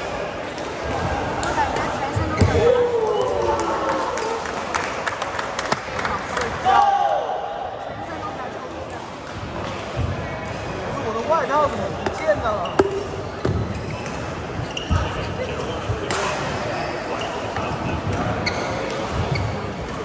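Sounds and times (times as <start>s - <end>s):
shoes squeaking on court: 12.0s - 15.7s, 17.1s - 20.0s.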